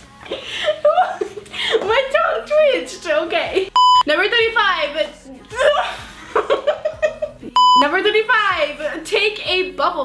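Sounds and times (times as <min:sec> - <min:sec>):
electronic bleep tone: 0:03.8 - 0:04.1, 0:07.6 - 0:07.9.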